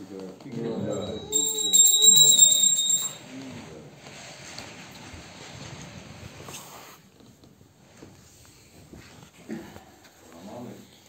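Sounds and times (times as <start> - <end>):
low voices: 0.5 - 3.2
high-pitched ringing tone: 0.7 - 3.2.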